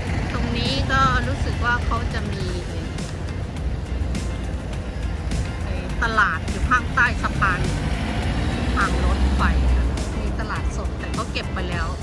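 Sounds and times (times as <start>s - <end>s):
background music: 0.0s - 12.0s
street traffic: 0.0s - 12.0s.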